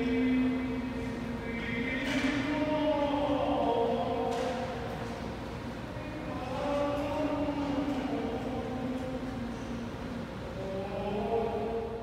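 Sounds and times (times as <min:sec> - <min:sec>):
slow choral music: 0:00.0 - 0:04.7.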